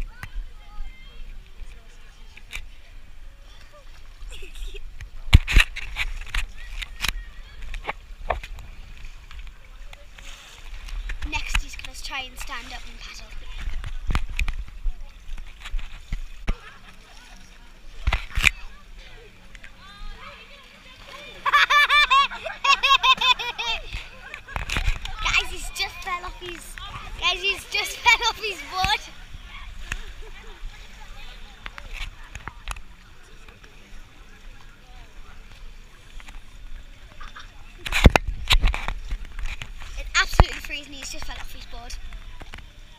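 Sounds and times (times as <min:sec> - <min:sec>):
paddle slapping water: 0:00.0 - 0:42.9
high-pitched laughter: 0:21.4 - 0:24.5.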